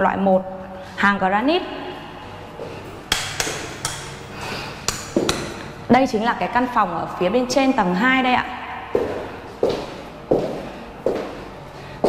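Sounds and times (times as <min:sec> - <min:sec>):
footsteps on hard floor: 0:05.2 - 0:05.4, 0:08.9 - 0:11.5.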